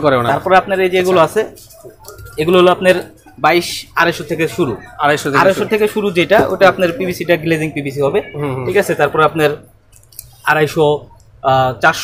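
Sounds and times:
man speaking: 2.2 - 9.7.

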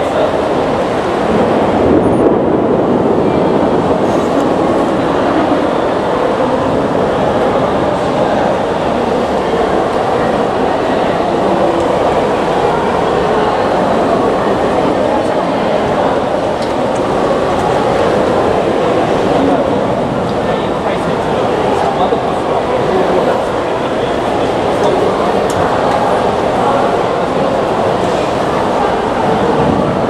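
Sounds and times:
heavy rain behind a window: 0.0 - 30.0
murmur of voices: 0.0 - 30.0.

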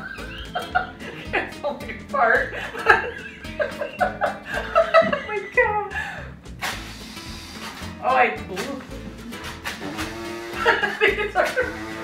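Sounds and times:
background music: 0.0 - 12.0
party horn buzzing blast: 6.6 - 7.9, 9.6 - 10.9, 11.5 - 12.0.

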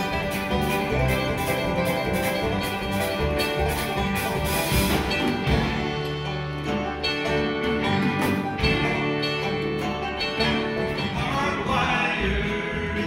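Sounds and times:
acoustic guitar picking: 0.0 - 13.0
banjo picking: 0.0 - 13.0
drum kit: 0.0 - 13.0
fiddles: 0.0 - 13.0
upright bass: 0.0 - 13.0.

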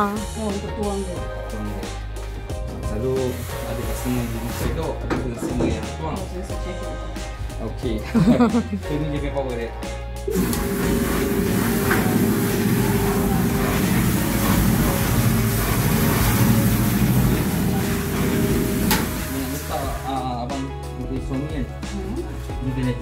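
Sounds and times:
paddle stirrer machine running: 10.3 - 20.0.

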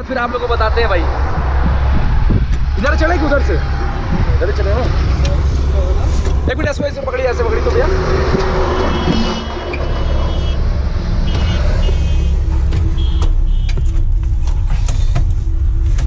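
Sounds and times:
highway traffic rumble: 0.0 - 16.0.

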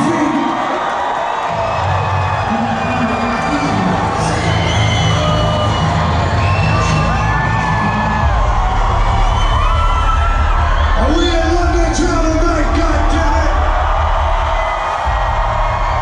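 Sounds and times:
crowd cheering: 0.0 - 16.0
live concert music with heavy bass: 0.0 - 16.0
shouts and whoops: 0.0 - 16.0.

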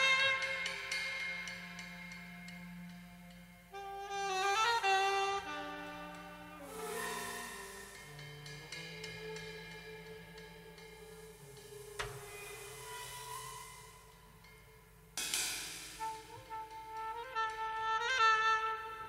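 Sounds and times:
jazz saxophone playing: 0.0 - 14.8, 15.9 - 19.0.

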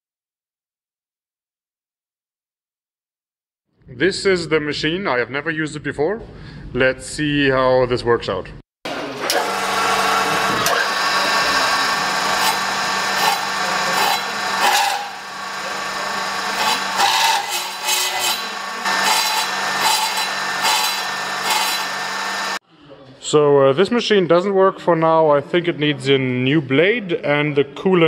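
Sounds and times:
circular saw cutting steel: 8.9 - 22.6
saw motor hum: 8.9 - 22.6.

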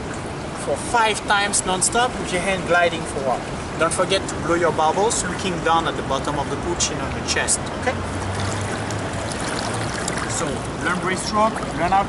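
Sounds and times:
pool water sloshing: 8.0 - 12.0.

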